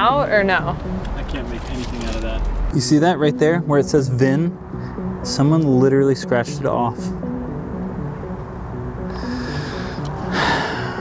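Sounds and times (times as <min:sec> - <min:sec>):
music with held low notes: 0:00.0 - 0:11.0
breathy rushing swell: 0:06.9 - 0:11.0.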